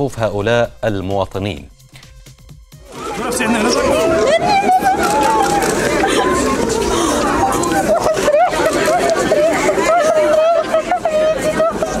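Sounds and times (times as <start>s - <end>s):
crowd talking and calling out: 2.8s - 12.0s.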